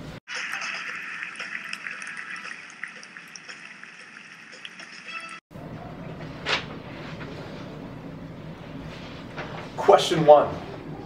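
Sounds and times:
fizzing liquid: 0:00.3 - 0:05.4.

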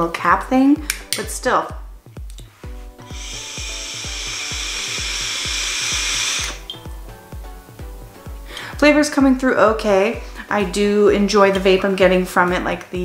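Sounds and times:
background music with steady beat: 0:00.0 - 0:13.0
vape hiss and coil sizzle: 0:02.4 - 0:07.3.

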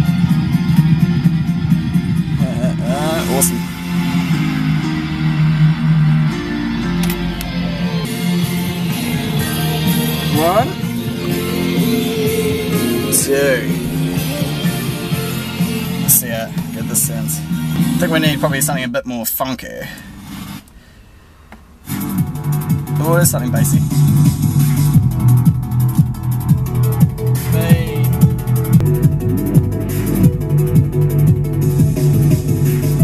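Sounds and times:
guitar music through car stereo: 0:00.0 - 0:19.0, 0:21.9 - 0:33.0
small click: 0:07.0 - 0:07.5.

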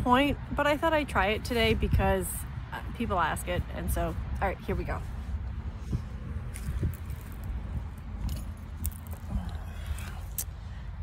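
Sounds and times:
wind rumbling on microphone: 0:01.6 - 0:11.0.

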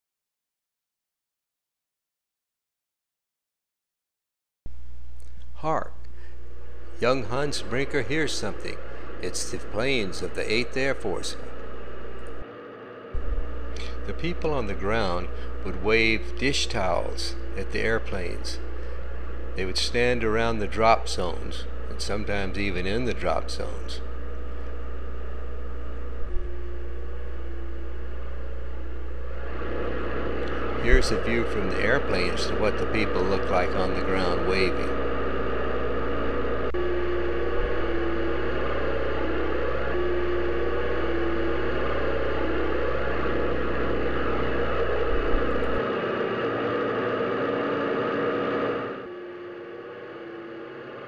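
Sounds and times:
deep hum: 0:04.7 - 0:51.0
aircraft engines droning: 0:05.6 - 0:51.0.

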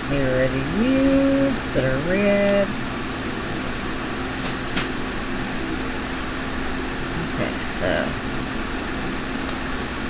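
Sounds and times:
mechanical hum with hiss: 0:00.0 - 0:10.0.

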